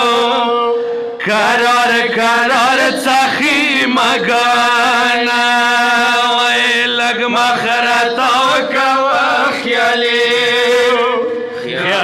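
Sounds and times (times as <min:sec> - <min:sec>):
two men chanting a lament: 0:00.0 - 0:12.0.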